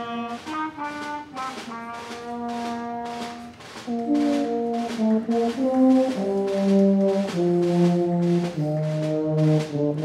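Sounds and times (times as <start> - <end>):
brass ensemble playing march: 0.0 - 10.0.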